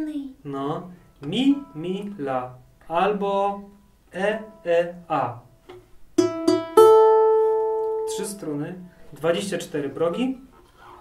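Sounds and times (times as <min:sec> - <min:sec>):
balalaika strings plucked: 0:05.6 - 0:08.4.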